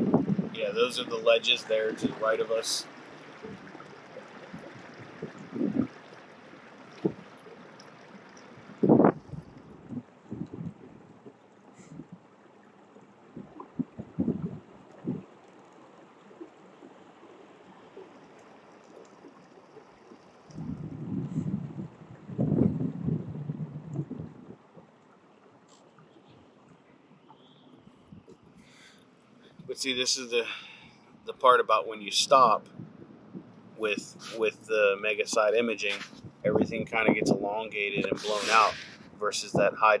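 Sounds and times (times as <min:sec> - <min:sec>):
wind buffeting microphone: 0:00.0 - 0:06.1, 0:08.6 - 0:12.3, 0:13.3 - 0:15.3, 0:20.5 - 0:24.9, 0:32.4 - 0:39.8
splashing: 0:00.0 - 0:09.9
water lapping against kayak hull: 0:00.0 - 0:40.0.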